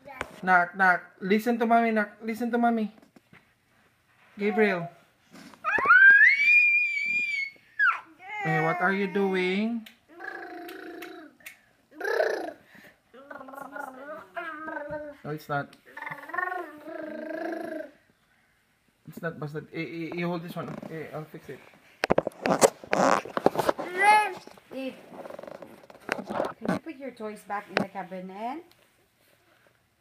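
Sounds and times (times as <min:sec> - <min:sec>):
child squealing: 0:05.6 - 0:09.4
toddler whining: 0:05.6 - 0:09.4, 0:10.1 - 0:15.3, 0:15.9 - 0:18.0.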